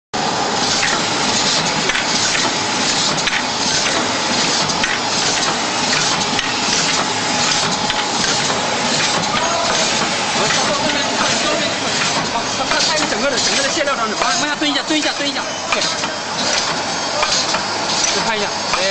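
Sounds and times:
printing machine clattering: 0:00.5 - 0:18.9.

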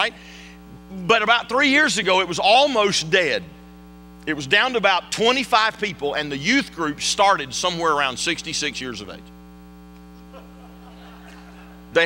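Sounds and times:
electrical mains hum: 0:00.0 - 0:12.0
man's voice: 0:00.9 - 0:03.5.

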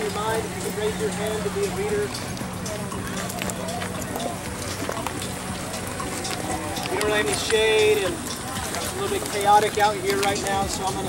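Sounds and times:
people chattering: 0:00.0 - 0:11.0
steady low hum: 0:00.0 - 0:11.0.

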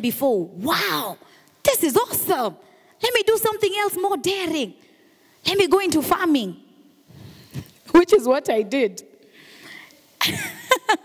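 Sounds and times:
woman breathing in: 0:09.2 - 0:10.0.

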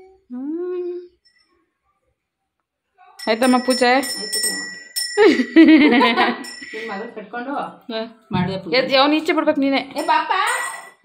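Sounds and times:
hand bell ringing: 0:03.2 - 0:07.1.

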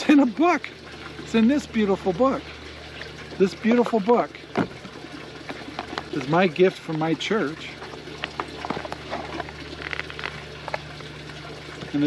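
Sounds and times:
water trickling and humming: 0:00.0 - 0:12.0
paper rustle: 0:08.3 - 0:10.5.

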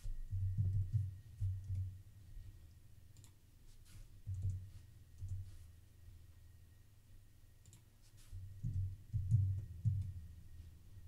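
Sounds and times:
soft low thuds: 0:00.0 - 0:02.6, 0:08.4 - 0:10.7
computer keys clicking: 0:03.1 - 0:03.4, 0:04.3 - 0:04.6, 0:07.6 - 0:07.9.

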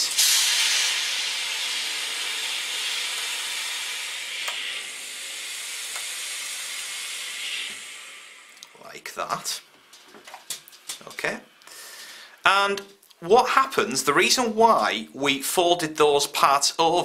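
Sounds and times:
steam iron hissing: 0:00.0 - 0:08.7.

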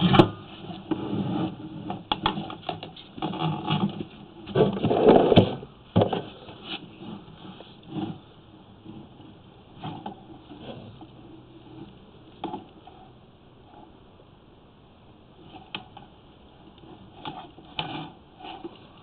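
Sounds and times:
camera head scraping along pipe: 0:16.8 - 0:19.0.

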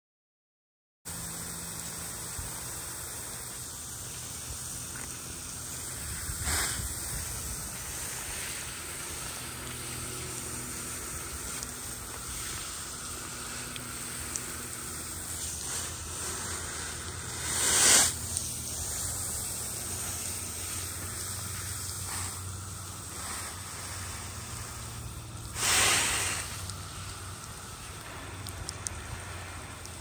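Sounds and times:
hose nozzle spraying water: 0:01.1 - 0:30.0.

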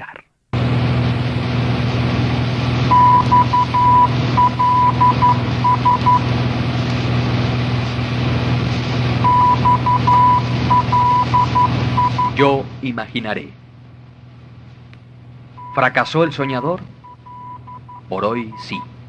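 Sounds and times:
low hum with hiss: 0:00.0 - 0:19.0
electronic morse code beeps: 0:02.9 - 0:06.2, 0:09.2 - 0:12.4, 0:15.6 - 0:18.9.

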